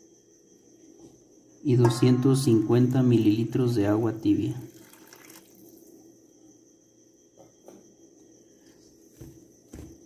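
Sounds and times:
thin high whine: 1.6s - 4.6s.

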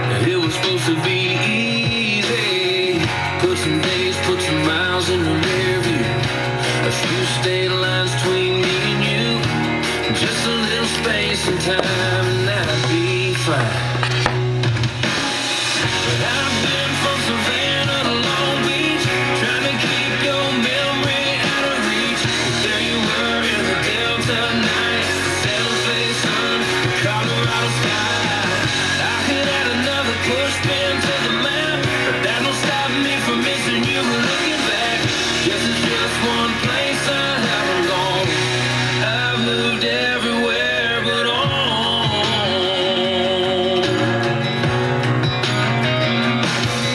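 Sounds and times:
country music on radio: 0.0s - 46.9s.

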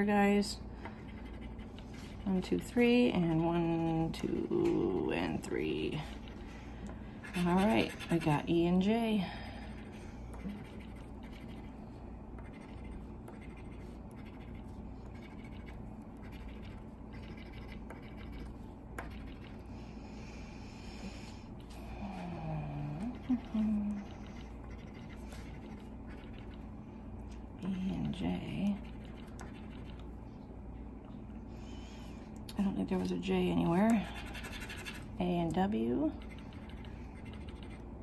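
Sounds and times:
coin scratching lottery ticket: 12.4s - 19.4s.

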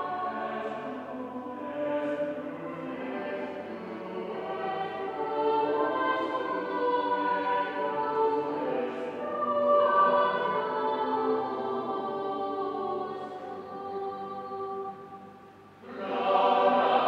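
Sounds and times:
choir singing sustained notes: 0.0s - 17.0s.

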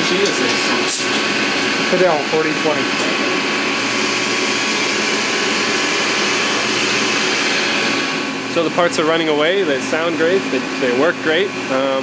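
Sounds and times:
milling machine whirring: 0.0s - 12.0s.

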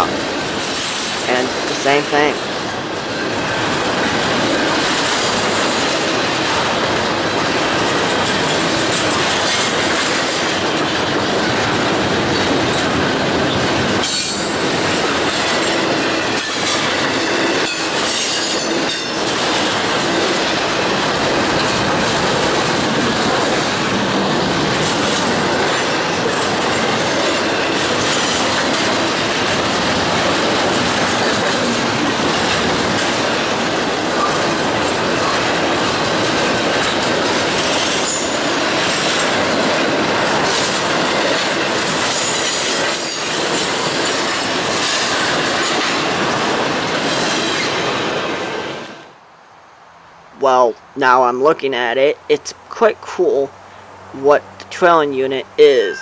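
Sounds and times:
steel wheels rolling on rails: 0.0s - 1.7s, 2.4s - 49.2s.

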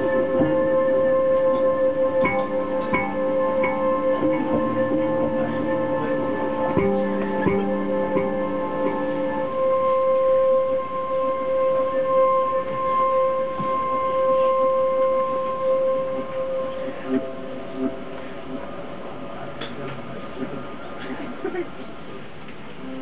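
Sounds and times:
hurdy-gurdy drone: 0.0s - 19.9s
low held hurdy-gurdy notes: 0.0s - 19.9s.

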